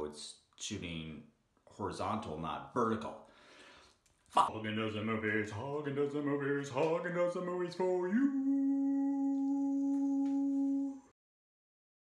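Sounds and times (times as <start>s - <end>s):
man singing a held note: 7.8s - 11.1s.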